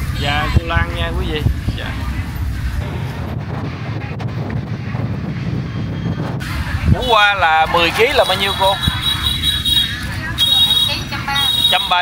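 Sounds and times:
faint market background noise: 0.0 - 12.0
wind buffeting microphone: 0.0 - 12.0.

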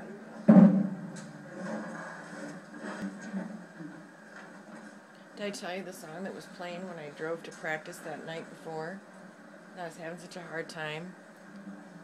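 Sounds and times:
faint television background noise: 0.0 - 12.0.

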